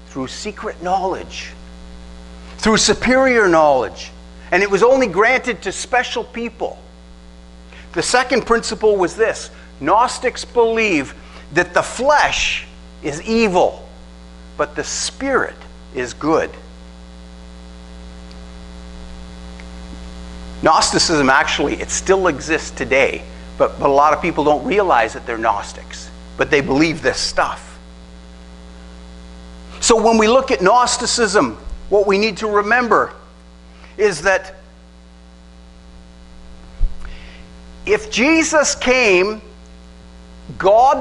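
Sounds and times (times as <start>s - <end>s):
electrical mains hum: 0.0s - 41.0s
short low thump: 36.8s - 37.0s.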